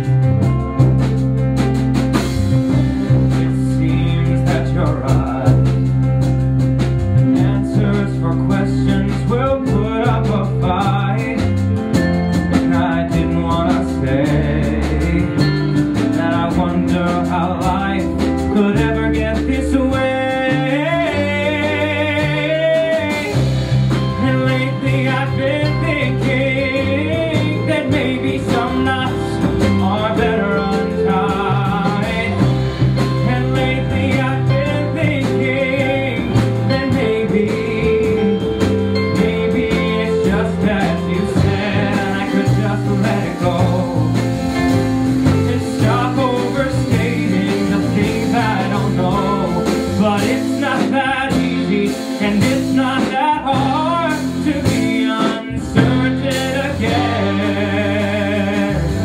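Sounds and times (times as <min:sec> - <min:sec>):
live band music: 0:00.0 - 0:59.0
vibrato melodic line: 0:00.0 - 0:59.0.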